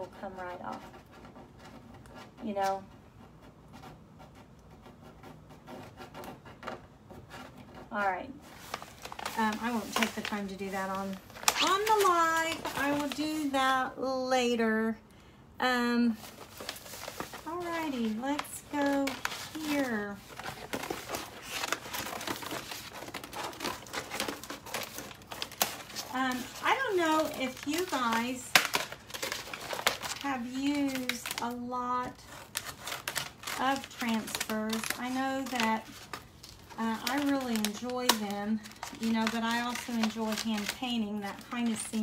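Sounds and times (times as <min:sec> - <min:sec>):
scraping and rubbing on board: 0:00.0 - 0:10.2
craft sheet crinkling: 0:05.7 - 0:13.8, 0:16.1 - 0:42.0.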